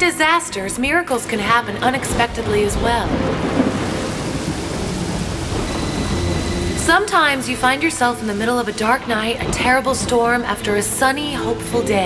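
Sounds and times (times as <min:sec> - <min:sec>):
heavy rain: 0:00.2 - 0:12.0
low rumbling thunder: 0:01.3 - 0:12.0.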